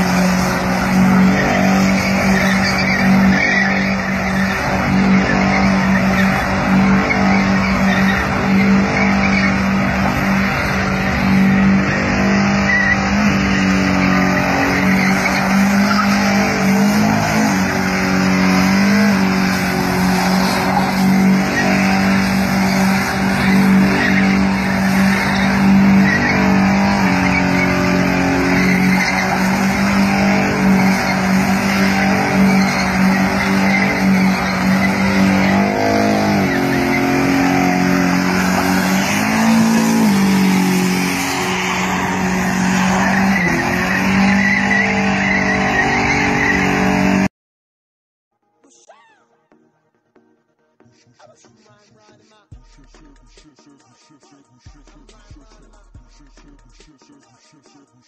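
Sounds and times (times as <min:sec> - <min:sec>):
car engine revving high: 0:00.0 - 0:47.3
tyres screeching: 0:00.0 - 0:47.3.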